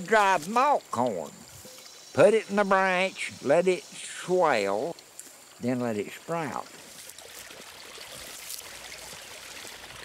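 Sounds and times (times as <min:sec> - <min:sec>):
creek water rushing: 0:00.0 - 0:10.0.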